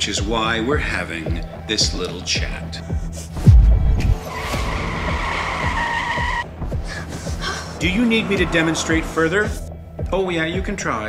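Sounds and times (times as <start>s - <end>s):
car tyres screeching: 4.1s - 9.7s.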